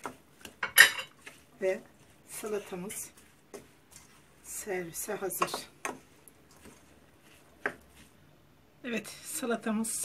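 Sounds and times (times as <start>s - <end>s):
light clicks of mixing: 0.0s - 8.5s.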